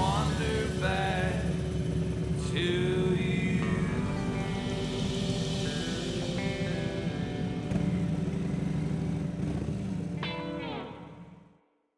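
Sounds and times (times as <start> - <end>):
country song: 0.0 - 11.2
falling pitch slide: 0.0 - 11.4
motorcycle engine rumbling: 0.0 - 11.4.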